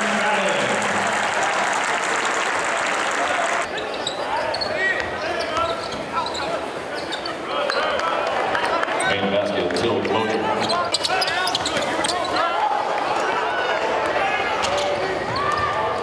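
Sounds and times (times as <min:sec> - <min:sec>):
crowd in a gym: 0:00.0 - 0:16.0
sneakers squeaking on hardwood: 0:03.6 - 0:09.1, 0:10.4 - 0:13.2, 0:14.0 - 0:16.0.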